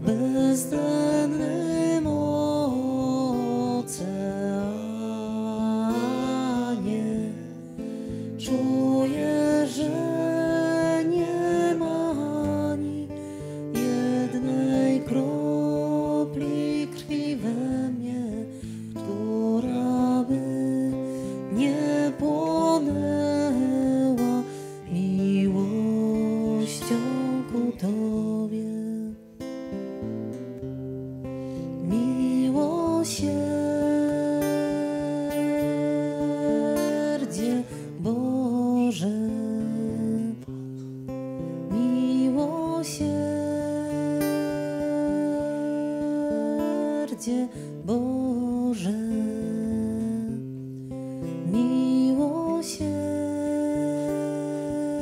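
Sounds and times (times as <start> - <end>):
slow acoustic guitar music: 0.0 - 55.0.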